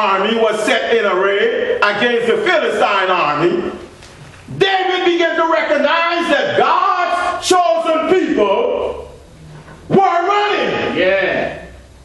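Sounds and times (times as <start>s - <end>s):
man exclaiming: 9.9s - 11.6s.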